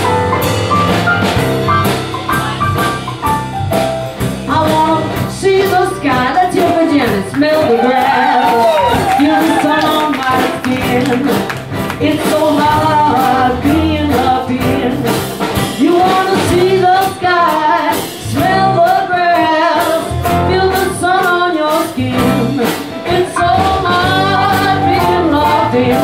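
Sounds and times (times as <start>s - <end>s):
bass guitar: 0.0s - 26.0s
drum kit: 0.0s - 26.0s
guitar: 0.0s - 26.0s
woman singing: 4.5s - 26.0s.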